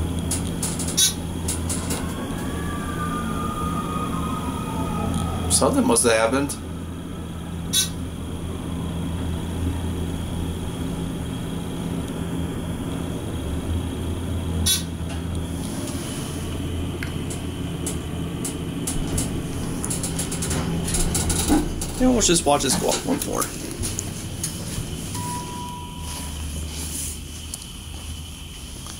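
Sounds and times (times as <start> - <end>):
elevator clicks: 0.0 - 2.6, 17.0 - 26.0
elevator clunk: 0.0 - 3.0, 17.0 - 26.6
elevator humming: 0.0 - 28.9.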